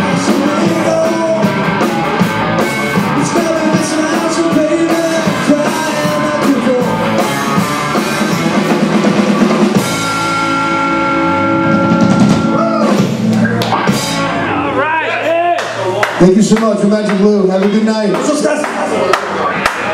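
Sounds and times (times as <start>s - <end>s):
drum and cymbal hits: 0.0s - 14.5s
live rock band playing: 0.0s - 19.6s
guitar chord ringing: 9.8s - 14.7s.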